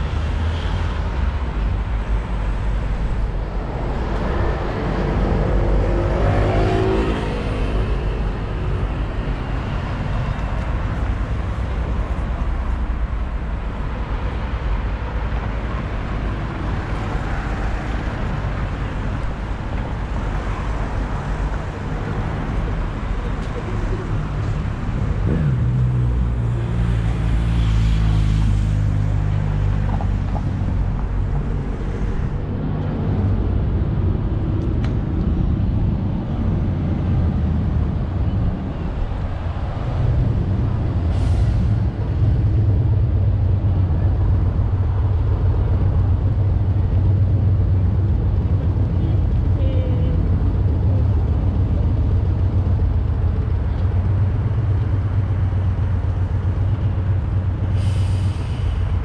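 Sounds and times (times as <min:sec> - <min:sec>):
traffic engine hum: 0:00.0 - 0:59.0
brief hiss: 0:57.8 - 0:58.9.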